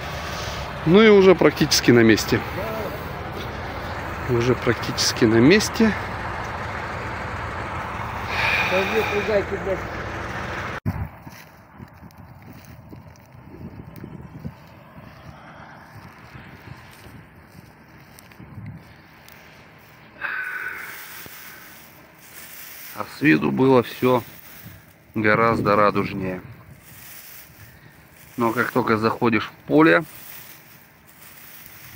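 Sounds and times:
engine running: 0.0 - 31.9
person speaking: 8.3 - 10.1, 28.2 - 30.7
wind on microphone: 10.8 - 19.0.

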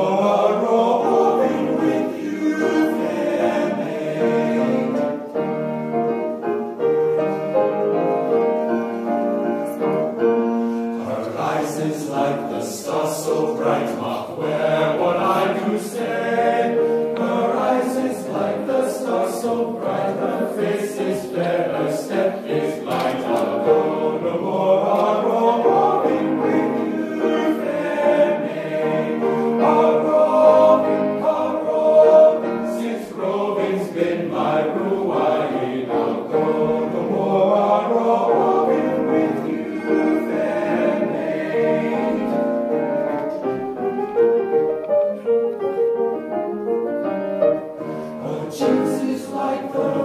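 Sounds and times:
men's choir singing: 0.0 - 44.4, 47.6 - 50.0
piano melodic interlude: 0.0 - 50.0.

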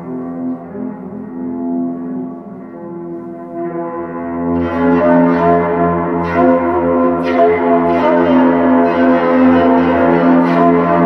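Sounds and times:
bowed metallic string drone: 0.0 - 11.0.

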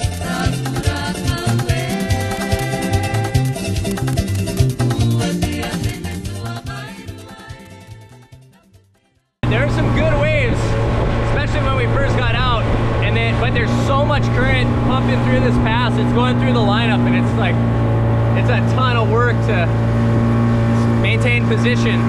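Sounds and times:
outboard motor running: 0.0 - 6.4, 9.4 - 22.0
music: 0.0 - 10.4
rush of wind and water: 9.4 - 22.0.

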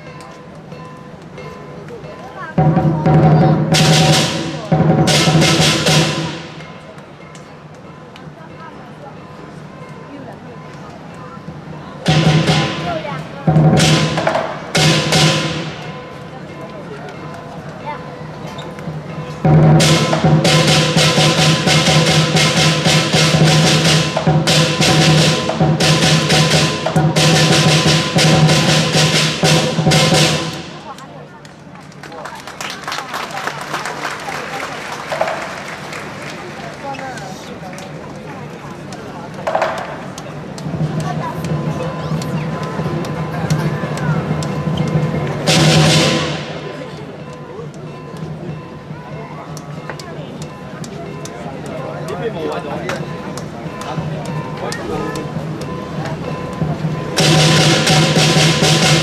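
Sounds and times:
big drum: 2.5 - 7.0, 12.0 - 16.3, 18.9 - 31.0, 40.6 - 47.2, 53.0 - 59.0.

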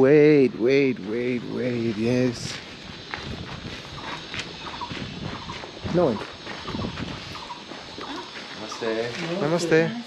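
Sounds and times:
people speaking: 0.0 - 2.6, 5.8 - 6.3, 8.0 - 10.0
outdoor background noise: 0.0 - 10.0.

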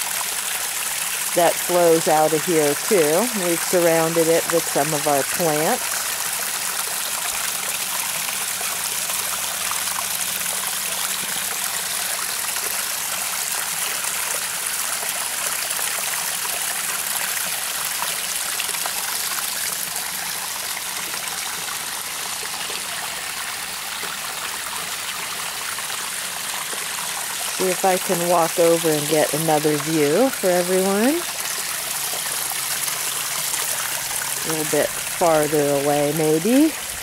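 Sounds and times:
water splashing over rocks: 0.0 - 37.0.

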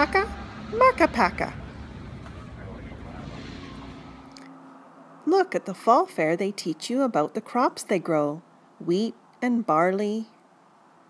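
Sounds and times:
low rumble with faint hiss: 0.0 - 11.0.

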